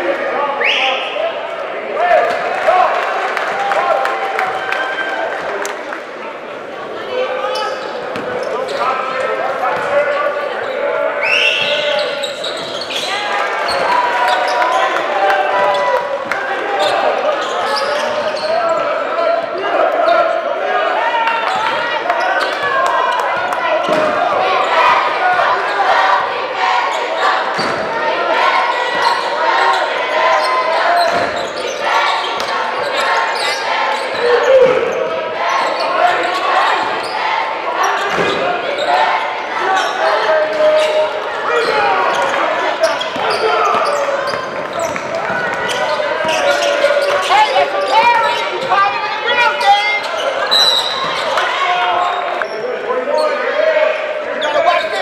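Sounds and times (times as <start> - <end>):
echoing crowd chatter: 0.0 - 55.0.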